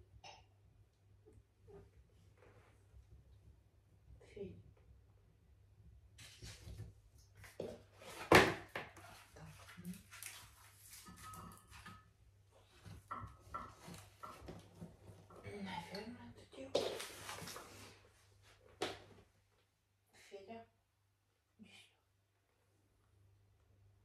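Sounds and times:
wood knocking and clattering: 0:12.8 - 0:15.4.

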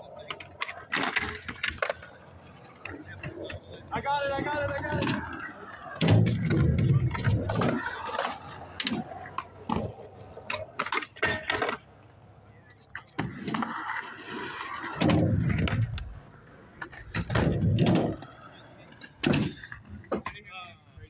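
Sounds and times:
skateboard clacking on concrete: 0:00.0 - 0:20.5
skateboard wheels rolling: 0:00.0 - 0:21.0.

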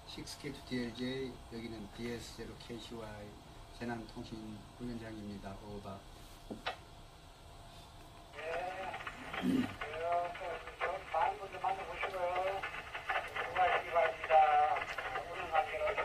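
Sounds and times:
voice over radio speaker: 0:08.4 - 0:16.0.

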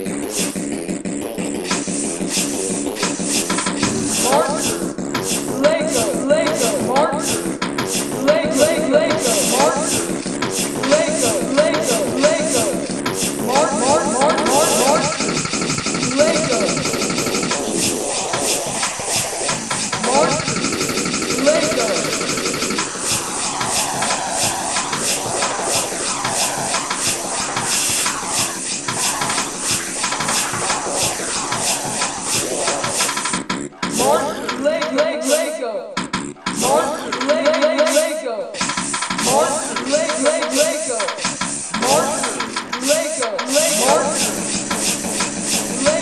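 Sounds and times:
rhythmic remix of sampled sounds: 0:00.0 - 0:46.0.

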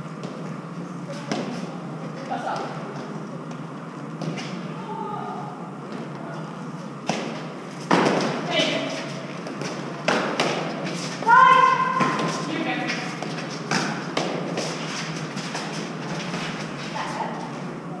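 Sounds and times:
ball hitting court walls: 0:01.2 - 0:01.6, 0:07.0 - 0:16.8
player shouting: 0:11.2 - 0:12.2.

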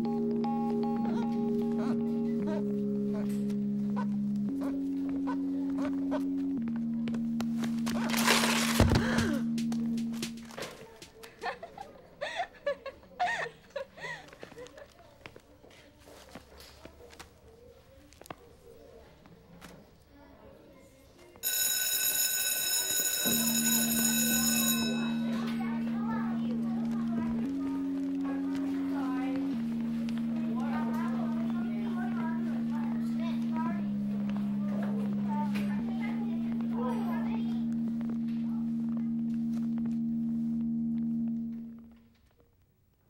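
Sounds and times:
steady low tone: 0:00.0 - 0:10.6, 0:24.3 - 0:42.2
electric bell ringing: 0:07.8 - 0:10.2, 0:21.4 - 0:41.8.

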